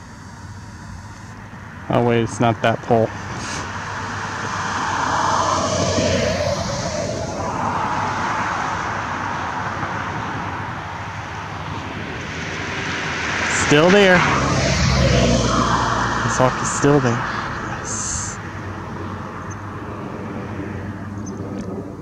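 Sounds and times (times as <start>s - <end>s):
passing road traffic: 0.0s - 22.0s.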